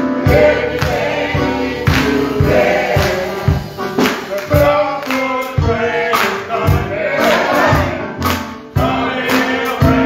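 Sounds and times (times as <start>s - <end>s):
gospel song by several voices: 0.0s - 10.0s
instrumental accompaniment: 0.0s - 10.0s.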